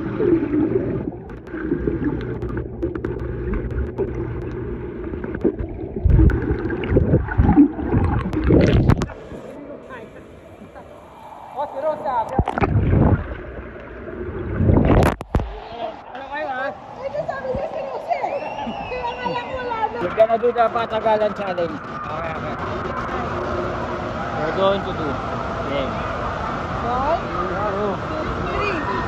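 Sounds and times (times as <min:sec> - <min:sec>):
water sloshing and splashing: 0:00.0 - 0:09.9, 0:12.2 - 0:15.6.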